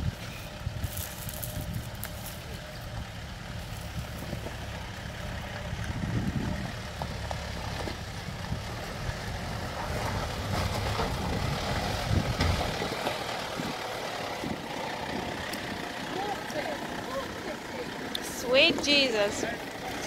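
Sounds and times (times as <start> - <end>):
engine running at low revs: 0.0 - 20.0.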